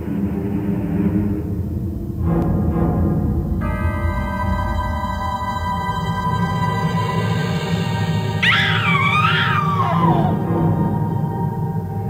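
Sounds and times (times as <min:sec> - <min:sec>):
eerie background music: 0:00.0 - 0:12.0
woman screaming: 0:08.4 - 0:10.4.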